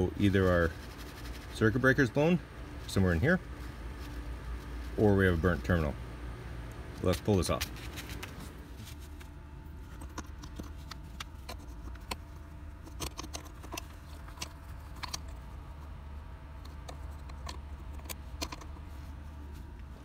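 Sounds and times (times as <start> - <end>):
steady low hum: 0.0 - 20.0
plastic connector clicking and rattling: 16.6 - 18.7.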